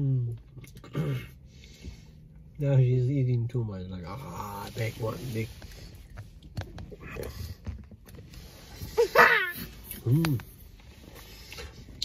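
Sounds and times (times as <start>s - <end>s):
child yelping and crying: 9.0s - 9.8s.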